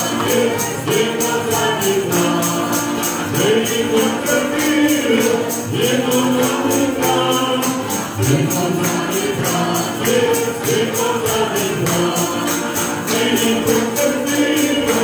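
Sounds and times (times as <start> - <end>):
group singing a church song: 0.0 - 15.0
tambourine jingling: 0.0 - 15.0.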